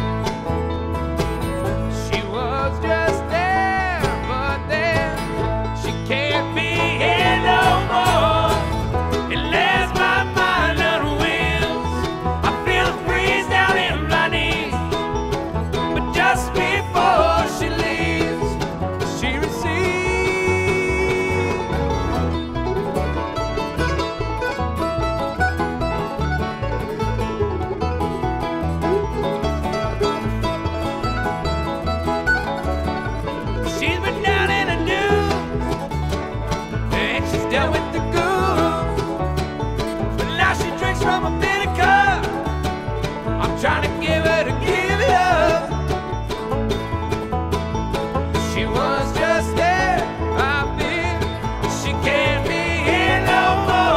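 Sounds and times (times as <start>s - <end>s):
banjo picking: 0.0s - 53.9s
bluegrass string band playing: 0.0s - 53.9s.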